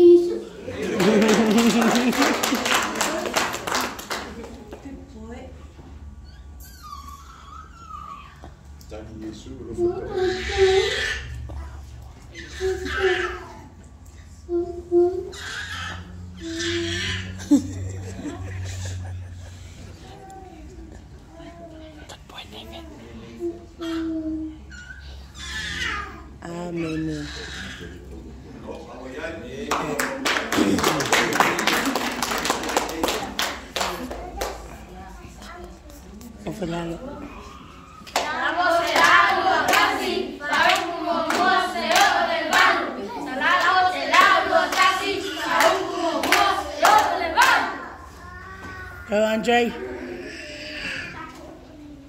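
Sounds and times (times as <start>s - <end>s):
rhythmic hand claps: 0.9s - 4.8s, 29.7s - 34.7s, 38.0s - 42.8s, 43.5s - 47.7s
child's high-pitched squeal: 6.2s - 8.5s, 23.8s - 25.8s
children singing: 38.2s - 47.9s.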